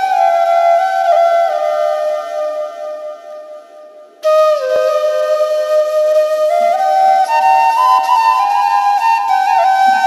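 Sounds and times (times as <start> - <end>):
held flute note: 0.0 - 10.0.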